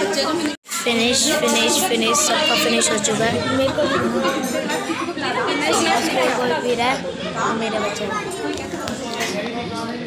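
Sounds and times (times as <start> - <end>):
overlapping chatter of people: 0.0 - 10.0.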